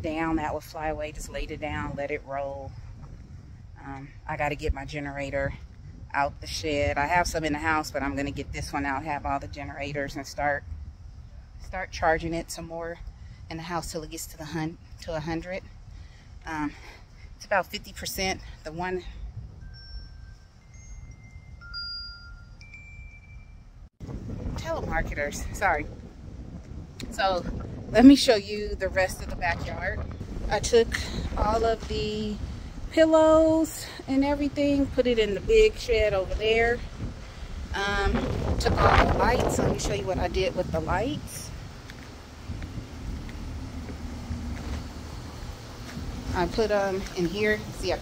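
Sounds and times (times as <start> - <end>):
wind rumble on microphone: 0.0 - 48.0
wind chime ringing: 19.6 - 23.8.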